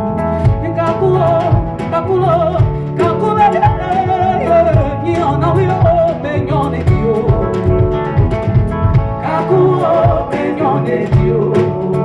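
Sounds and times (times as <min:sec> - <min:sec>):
drum kit: 0:00.0 - 0:12.0
electric bass: 0:00.0 - 0:12.0
guitar: 0:00.0 - 0:12.0
woman singing wordless melody: 0:00.4 - 0:07.9, 0:09.2 - 0:12.0.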